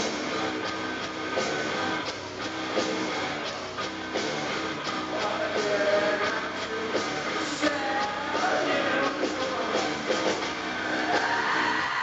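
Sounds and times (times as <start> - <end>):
loud industrial metal music: 0.0 - 12.0.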